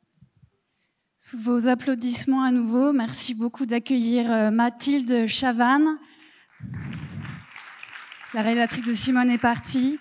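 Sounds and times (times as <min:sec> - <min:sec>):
distant audience applause: 0:06.6 - 0:10.0.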